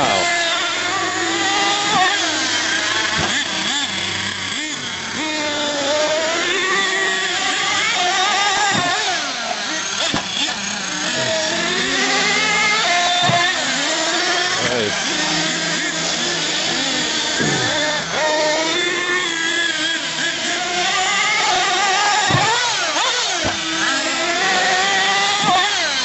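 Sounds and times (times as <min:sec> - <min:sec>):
rc truck engines revving: 0:00.0 - 0:26.0.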